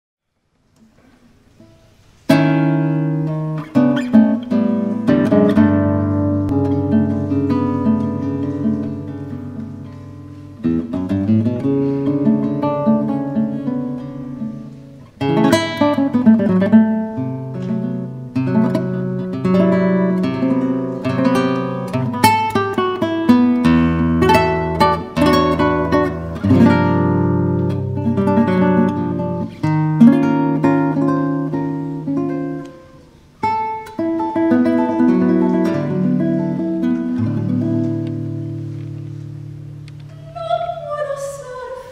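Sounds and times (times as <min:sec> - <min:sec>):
solo classical guitar: 0:00.3 - 0:41.9.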